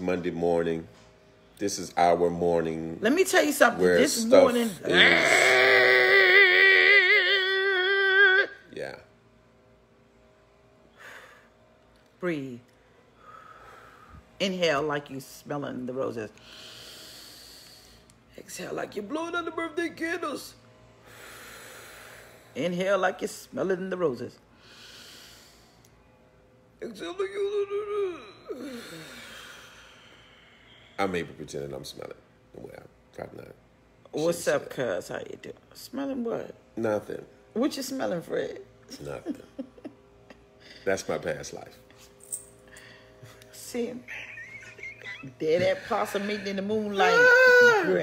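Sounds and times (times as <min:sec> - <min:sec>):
woman's strained argh cry: 0:04.9 - 0:08.6
voiced sigh: 0:28.0 - 0:31.0.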